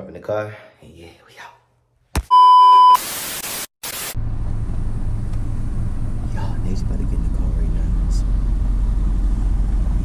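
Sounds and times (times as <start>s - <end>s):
electronic beep: 2.3s - 3.0s
static-like hiss bursts: 2.8s - 4.2s
car cabin engine hum: 4.2s - 10.0s.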